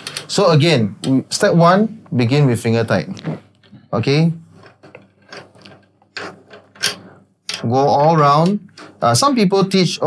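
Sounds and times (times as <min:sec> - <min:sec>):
drum tension rods scraping: 0:04.4 - 0:09.4.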